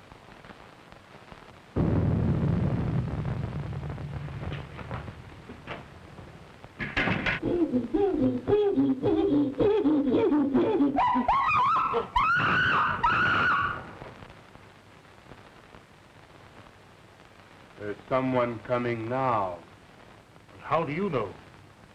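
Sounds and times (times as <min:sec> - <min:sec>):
thunderclap: 0:01.8 - 0:07.4
ape hooting calls: 0:07.4 - 0:13.8.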